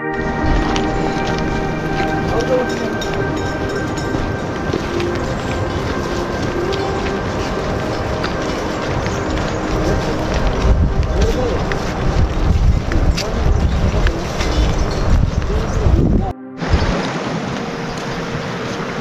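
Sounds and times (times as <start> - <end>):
indistinct voices: 0.0 - 16.8
outdoor background noise: 0.0 - 19.0.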